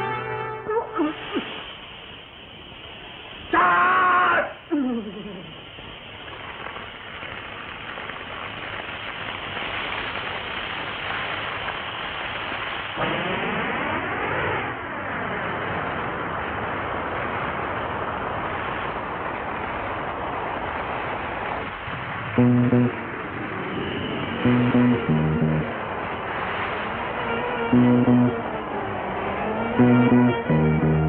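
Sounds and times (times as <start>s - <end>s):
fire roaring: 1.0s - 31.0s
plucked-string notes: 24.5s - 25.7s, 27.8s - 28.4s, 29.8s - 31.0s.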